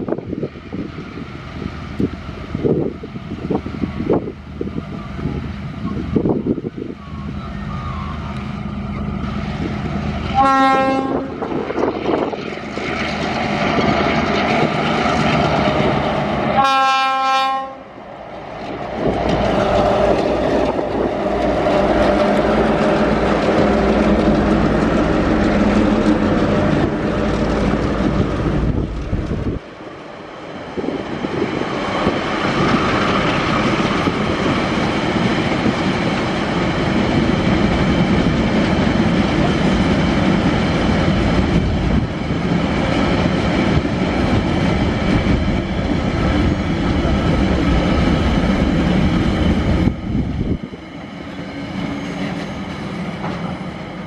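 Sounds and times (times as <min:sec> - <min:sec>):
diesel locomotive engines: 0:00.0 - 0:54.0
train wheels on track: 0:00.0 - 0:54.0
train horn blast: 0:10.3 - 0:11.7, 0:16.5 - 0:18.0.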